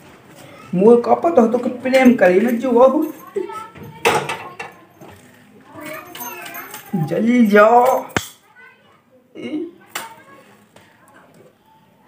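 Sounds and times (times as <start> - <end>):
children's voices talking: 0.3 - 12.0.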